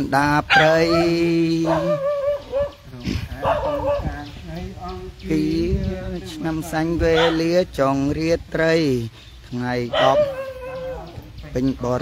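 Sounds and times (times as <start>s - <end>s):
person chanting: 0.0s - 7.8s.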